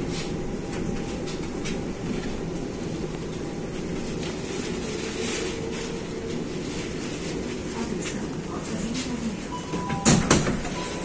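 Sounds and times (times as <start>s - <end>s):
train low rumble: 0.0s - 11.0s.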